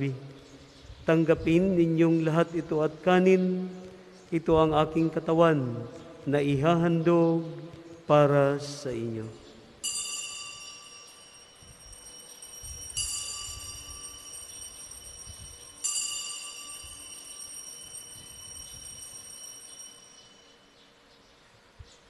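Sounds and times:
altar bell ringing: 9.8s - 20.8s.

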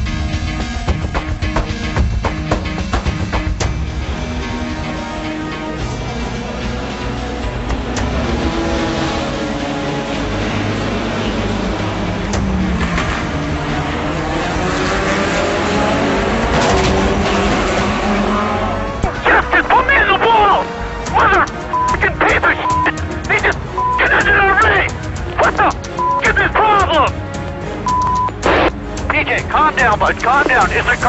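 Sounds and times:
background music: 0.0s - 31.0s
racing car engines accelerating: 1.5s - 31.0s
short beeps: 21.7s - 23.0s, 23.7s - 24.1s, 26.0s - 26.3s, 27.9s - 28.4s.

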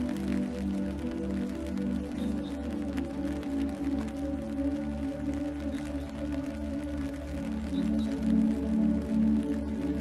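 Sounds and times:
rain hiss: 0.0s - 10.0s
slow ambient music: 0.0s - 10.0s.

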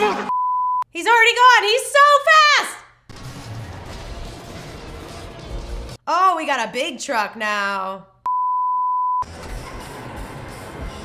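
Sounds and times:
pure-tone beep: 0.3s - 0.8s, 8.3s - 9.2s.

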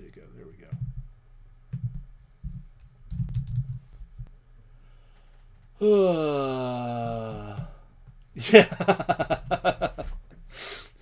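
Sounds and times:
computer keyboard typing: 1.7s - 4.0s.

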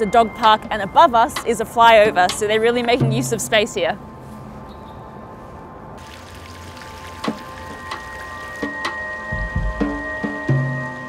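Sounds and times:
soft background music: 0.0s - 4.6s, 5.2s - 11.0s
echoing water drips: 6.0s - 9.4s.

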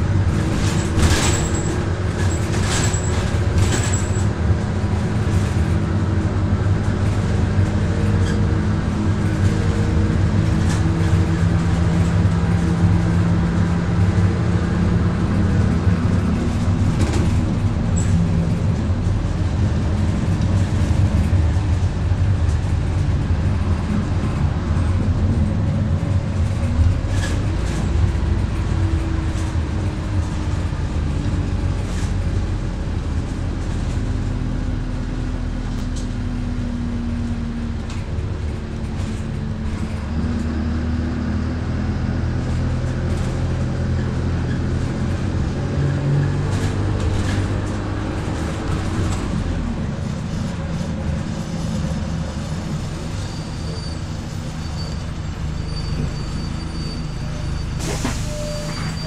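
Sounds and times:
interior rattles and clicks: 0.0s - 36.2s, 37.2s - 40.6s
bus engine drone: 0.0s - 59.0s.

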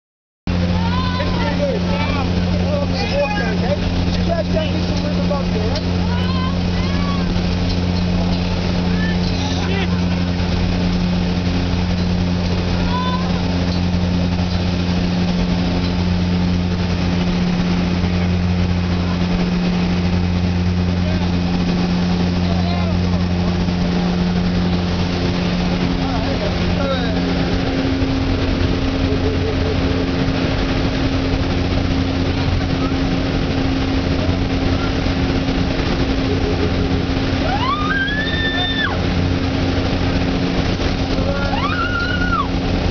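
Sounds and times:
plane engine drone in cabin: 0.5s - 42.9s.

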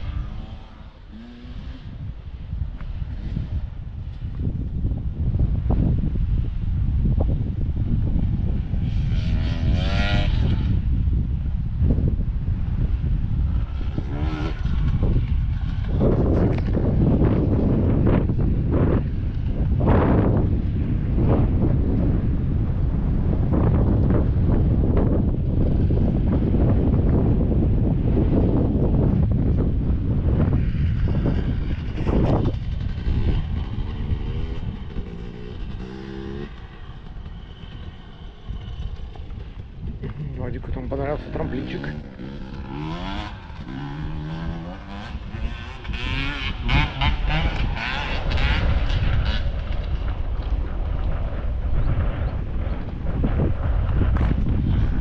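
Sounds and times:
distant dirt bike engines revving: 0.0s - 55.0s
wind buffeting microphone: 0.0s - 55.0s.

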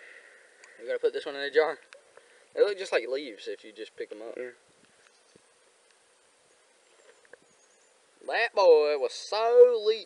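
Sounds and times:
faint outdoor hiss: 0.0s - 10.0s
faint ticks: 0.6s - 0.8s, 4.8s - 6.0s.

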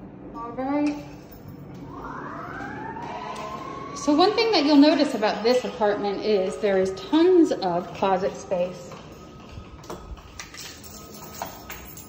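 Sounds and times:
siren wailing: 1.8s - 11.7s.

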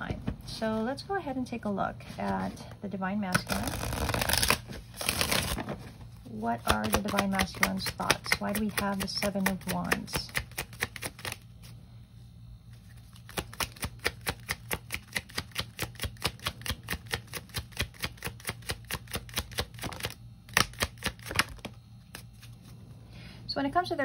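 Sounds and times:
cards being shuffled: 3.3s - 5.8s, 6.6s - 11.8s, 12.7s - 22.8s.

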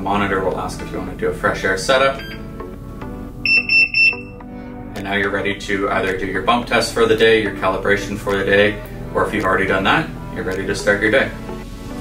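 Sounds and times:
high-pitched alarm beeps: 2.2s - 2.4s, 3.4s - 4.4s.

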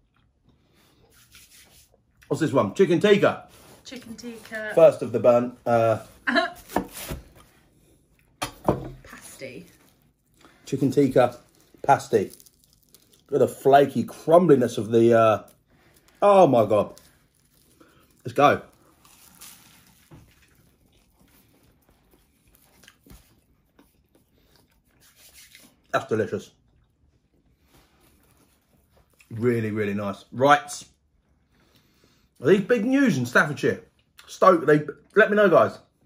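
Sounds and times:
quiet chewing: 0.0s - 1.3s, 16.8s - 29.4s
pastry crackles: 9.1s - 23.7s
pastry crunching: 9.6s - 25.9s.

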